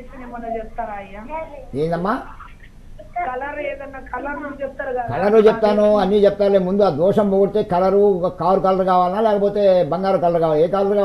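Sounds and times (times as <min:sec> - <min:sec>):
woman talking on a call: 0:00.0 - 0:01.7, 0:02.4 - 0:05.6.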